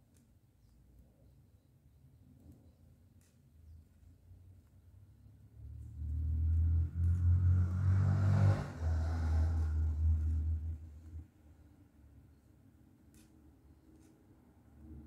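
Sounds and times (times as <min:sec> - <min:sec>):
vehicle engine rumble passing by: 0:05.4 - 0:11.3.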